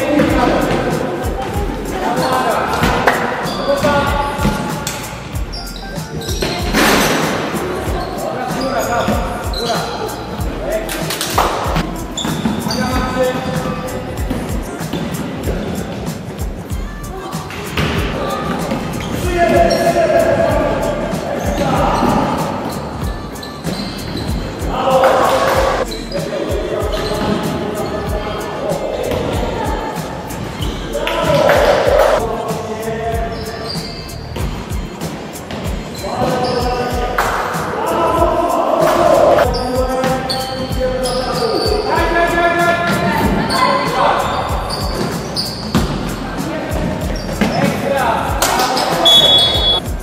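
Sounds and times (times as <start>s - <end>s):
players calling out: 35.7s - 50.0s.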